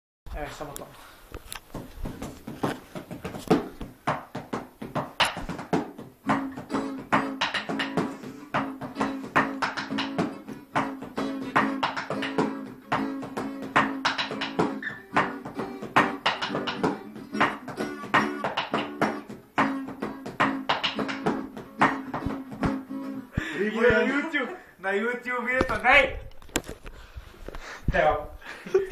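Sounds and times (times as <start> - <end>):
guitar strummed fast: 6.2 - 23.3.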